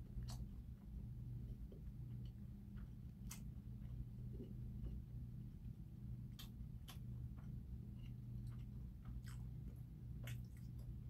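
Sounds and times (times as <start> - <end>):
soft eating clicks and crunches: 0.0 - 11.0
steady low hum: 0.0 - 11.0.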